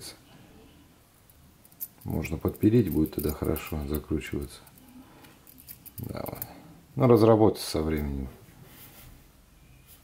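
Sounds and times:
fiddling with small metal keychain: 1.6 - 3.8, 4.7 - 6.5.

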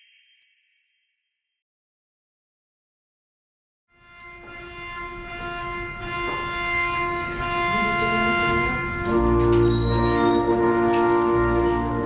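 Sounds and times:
organ chords: 4.0 - 12.0.

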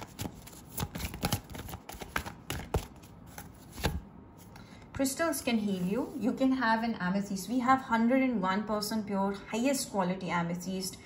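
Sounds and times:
cards snapping and tapping: 0.0 - 4.0.

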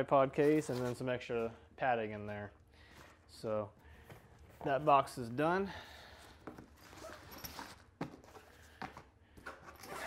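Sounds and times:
zipper rasping: 9.7 - 10.0.

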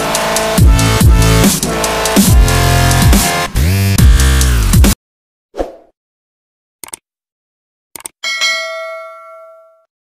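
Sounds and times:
notification bell chime: 8.2 - 9.9.

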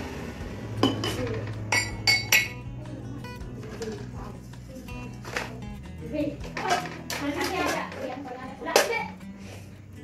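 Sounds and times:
cups and dishes clinking: 0.8 - 2.7, 6.4 - 9.1.

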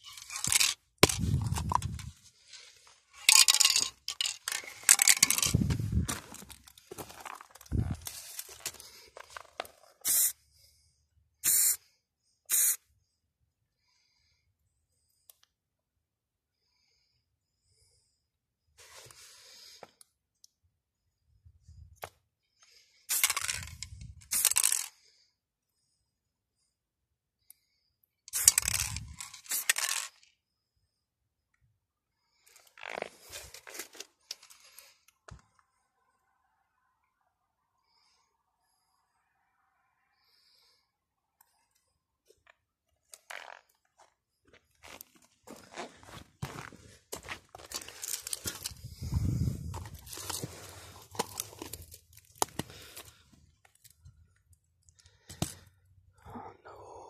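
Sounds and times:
spray can hissing: 10.0 - 10.3, 11.4 - 11.8, 12.5 - 12.8
spray paint can hissing: 10.0 - 10.4, 11.4 - 11.8, 12.5 - 12.8, 23.1 - 23.7, 24.3 - 24.8, 28.3 - 30.0.

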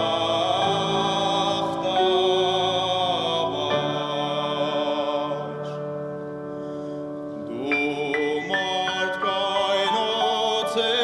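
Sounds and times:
man singing classical held notes: 0.0 - 6.3, 7.4 - 11.0.

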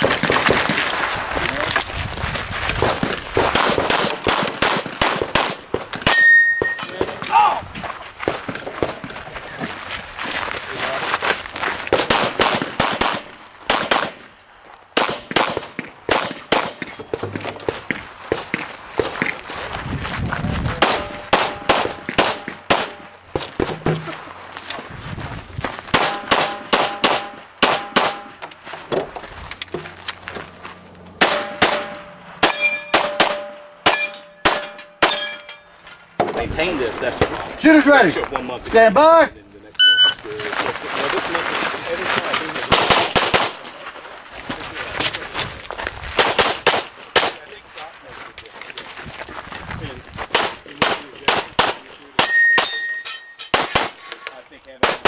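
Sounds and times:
pistol shots: 3.4 - 6.8, 11.9 - 14.2, 15.0 - 17.0, 20.8 - 23.9, 25.9 - 28.4, 31.2 - 35.3, 42.7 - 43.6, 46.2 - 47.4, 50.3 - 52.8, 53.5 - 54.0, 54.8 - 55.0
steel targets ringing: 6.0 - 7.1, 31.2 - 35.9, 52.2 - 53.6.

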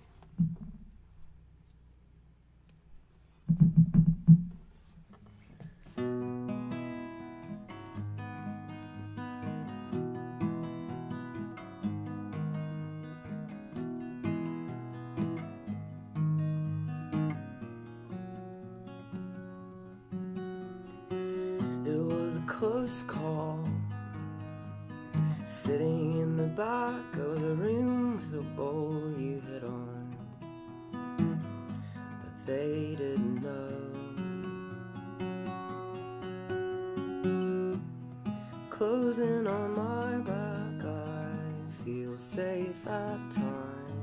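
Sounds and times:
low close-microphone noise: 0.0 - 1.4
acoustic guitar picked slowly: 0.0 - 44.0.

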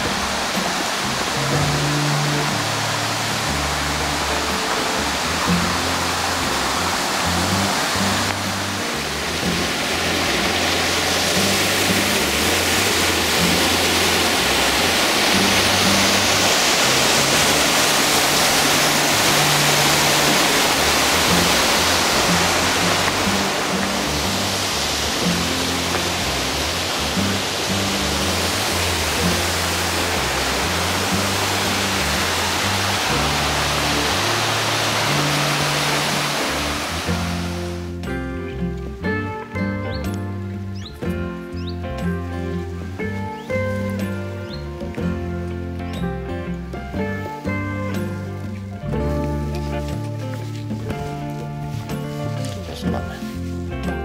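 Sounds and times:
background music with low notes: 0.0 - 54.0
mountain stream rushing over rocks: 0.0 - 54.0.

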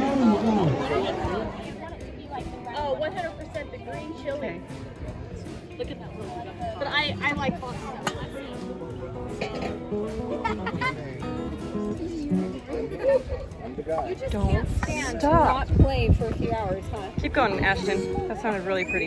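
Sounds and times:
acoustic guitar playing: 0.0 - 5.0, 6.1 - 13.0
people talking: 0.0 - 9.7, 10.3 - 19.0.

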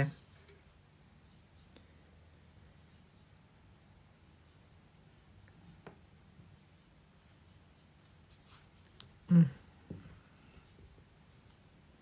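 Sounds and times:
soft yarn rustle: 0.0 - 1.0, 1.9 - 12.0.

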